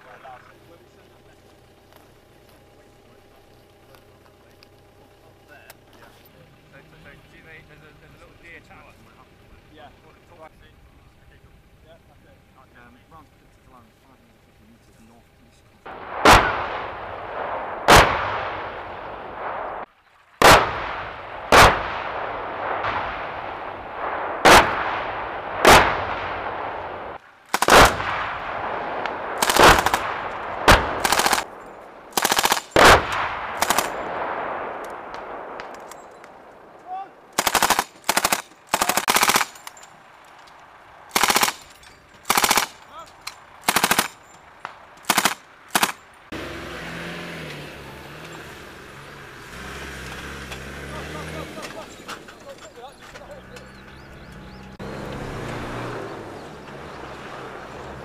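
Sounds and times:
heavy bangs with rolling echo: 15.9s - 39.7s, 41.0s - 42.8s
machine guns firing bursts: 27.5s - 28.4s, 29.2s - 34.4s, 37.3s - 39.8s, 41.1s - 42.8s, 43.6s - 44.3s, 45.0s - 46.0s.

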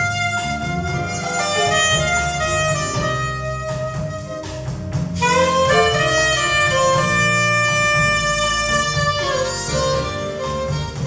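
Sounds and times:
clarinet melody: 0.0s - 11.0s
drums: 0.0s - 11.0s
piano: 0.0s - 11.0s.

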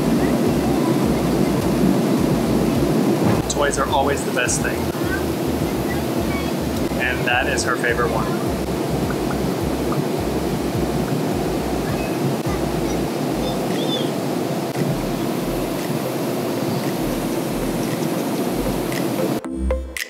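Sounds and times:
airliner cabin noise: 0.0s - 19.4s.

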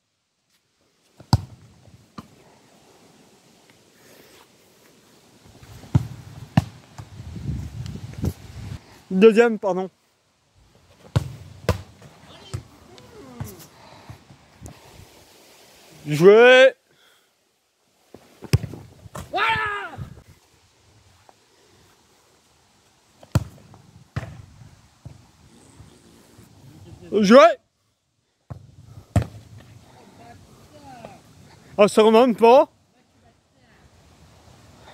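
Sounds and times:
football kicked and bouncing: 1.2s - 2.3s, 5.8s - 7.1s, 11.0s - 12.7s, 18.4s - 19.3s, 23.2s - 25.2s, 28.5s - 29.8s.

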